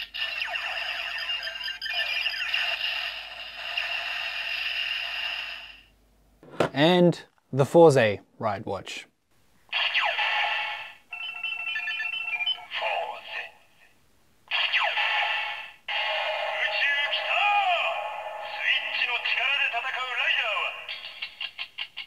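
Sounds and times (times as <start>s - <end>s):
toy electronic sound effects: 0.0s - 5.8s, 9.7s - 13.0s, 14.5s - 17.4s.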